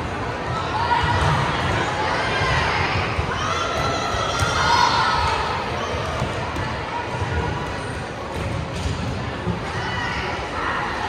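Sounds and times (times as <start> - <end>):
spectators' voices echoing: 0.0 - 11.0.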